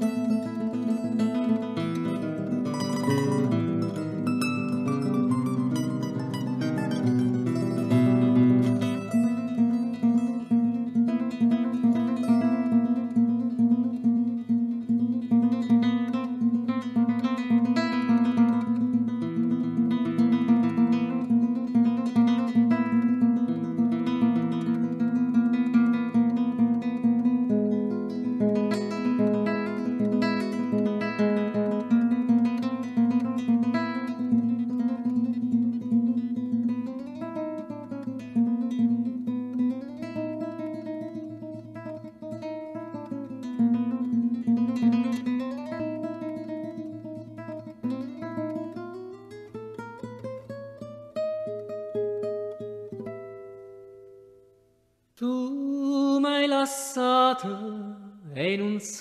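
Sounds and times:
strummed plucked strings: 0.0 - 54.4.

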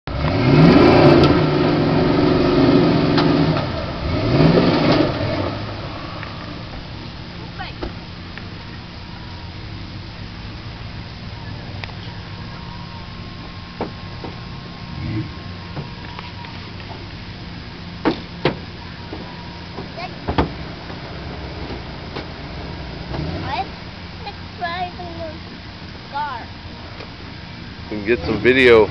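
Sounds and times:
truck engine revving: 0.0 - 28.9
truck driving through mud puddle: 0.1 - 6.7
sharp engine knocks: 13.4 - 14.4, 18.0 - 21.0.

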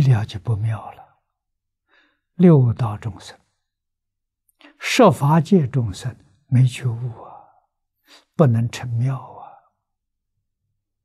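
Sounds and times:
elderly man speaking: 0.0 - 1.1, 2.4 - 3.4, 4.6 - 7.5, 8.1 - 9.6.

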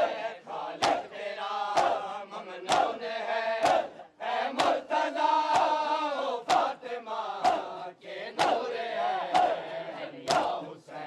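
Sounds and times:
voices chanting a lament: 0.0 - 11.0
chest slaps in unison: 0.8 - 2.1, 2.7 - 3.0, 3.6 - 6.8, 7.4 - 7.8, 8.4 - 8.7, 9.3 - 10.6.

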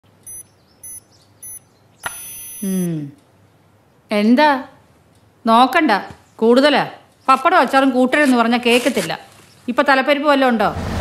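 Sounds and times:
blood pressure monitor beeping: 0.2 - 3.0.

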